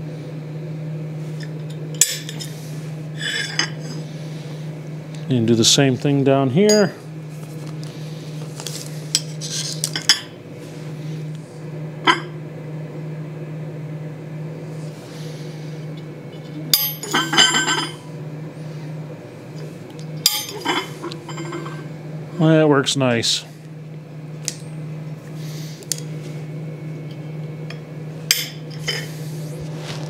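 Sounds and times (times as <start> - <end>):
steel plates clinking on anvil: 20.3 - 21.7.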